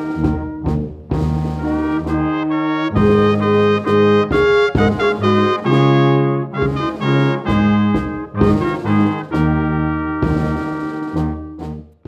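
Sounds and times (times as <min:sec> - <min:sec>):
brass quintet playing held chords: 0:00.0 - 0:12.0.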